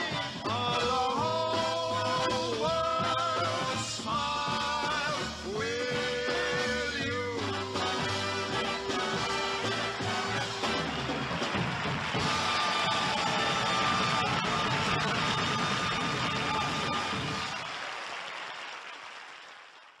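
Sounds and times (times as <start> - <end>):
busy bass line: 0.0 - 17.6
live band playing: 0.0 - 17.7.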